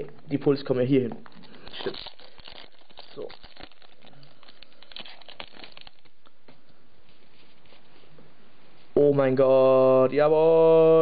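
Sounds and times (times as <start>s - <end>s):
foil wrapper crinkling: 1.1s - 7.8s
trading cards handled: 1.1s - 8.1s.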